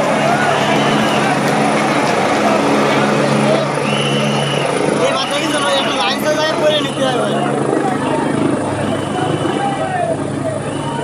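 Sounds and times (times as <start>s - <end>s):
people shouting: 0.0s - 5.0s, 7.3s - 11.0s
helicopter hovering: 0.0s - 11.0s.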